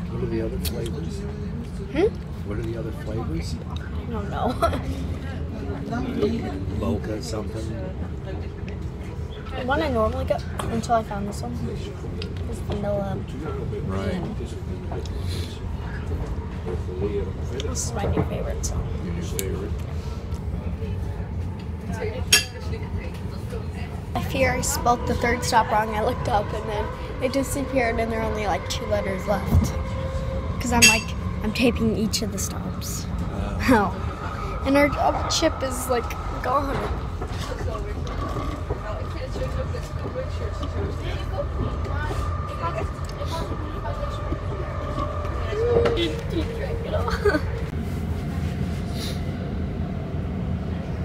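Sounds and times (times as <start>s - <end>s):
murmur of passengers' voices: 0.0s - 51.0s
train rumbling: 0.0s - 51.0s
steady high tone: 24.3s - 33.0s
sharp clink: 30.8s - 31.2s.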